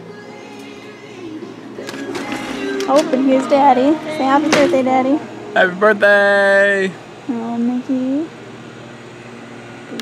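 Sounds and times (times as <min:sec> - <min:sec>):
indistinct voices: 0:00.5 - 0:08.3.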